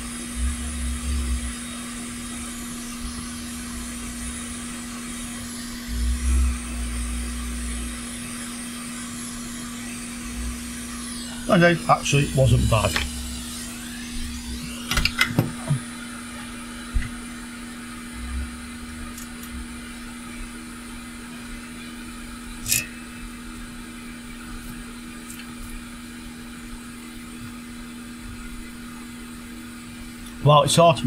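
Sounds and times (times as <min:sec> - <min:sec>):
hot air station blowing: 0:00.0 - 0:31.0.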